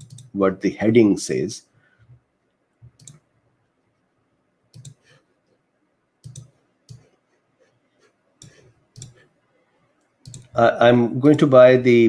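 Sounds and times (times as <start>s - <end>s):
computer mouse clicking: 0.0s - 0.3s, 2.8s - 3.2s, 4.7s - 5.2s, 6.2s - 7.4s, 8.0s - 9.3s, 10.0s - 10.6s.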